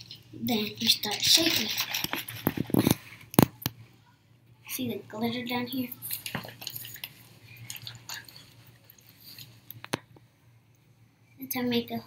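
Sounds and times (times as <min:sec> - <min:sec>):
water sloshing in bottle: 0:00.0 - 0:03.0, 0:06.0 - 0:09.5
plastic crinkling: 0:00.8 - 0:03.7, 0:06.0 - 0:10.0.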